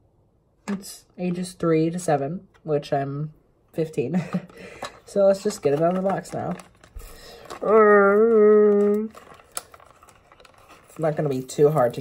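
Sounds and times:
blister pack rustling and clicking: 4.6s - 12.0s.

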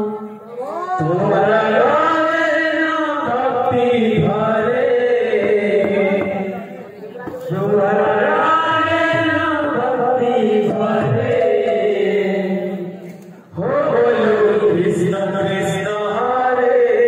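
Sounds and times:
men singing a chant: 1.0s - 17.0s.

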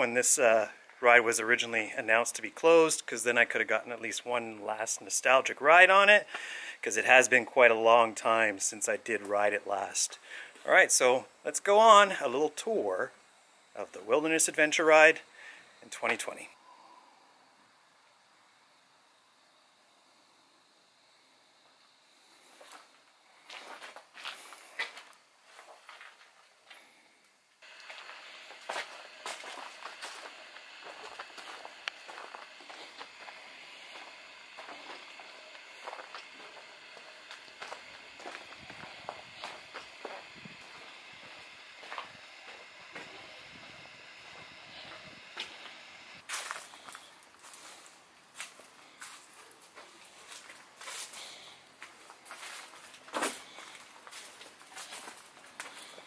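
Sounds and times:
steady high hiss: 0.0s - 56.0s
footsteps on dirt trail: 22.4s - 26.9s, 27.6s - 56.0s.

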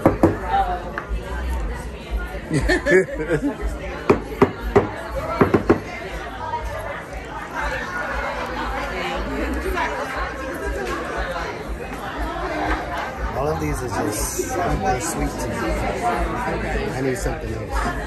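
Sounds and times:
chatter of people talking: 0.0s - 18.0s.

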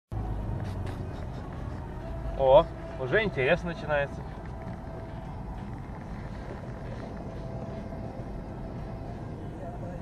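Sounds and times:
car engine droning: 0.1s - 10.0s.

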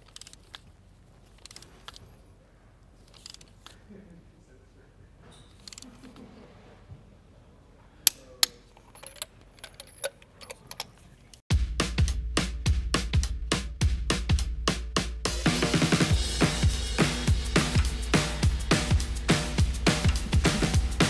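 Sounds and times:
torque wrench clicking: 5.6s - 5.9s
background music with drum beat: 11.5s - 21.0s.

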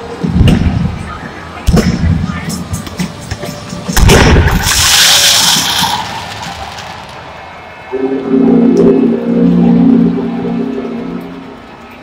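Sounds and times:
firework bang: 4.0s - 7.1s
firework rushing hiss: 4.3s - 7.3s.

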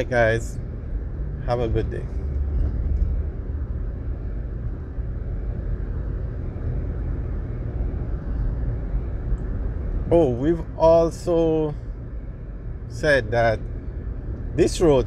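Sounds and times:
road and engine noise in car: 0.0s - 15.0s.

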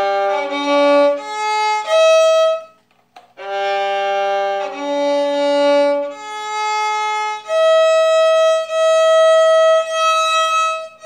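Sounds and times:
violin holding high note: 0.0s - 2.8s, 3.4s - 11.0s.

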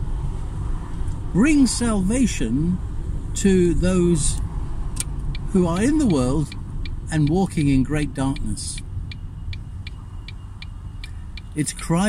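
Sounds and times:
car interior rumble: 0.0s - 12.0s
turn indicator ticking: 4.3s - 11.7s.

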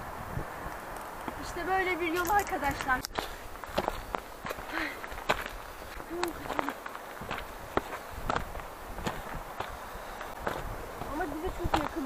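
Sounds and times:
footsteps on gravel: 1.0s - 12.0s.

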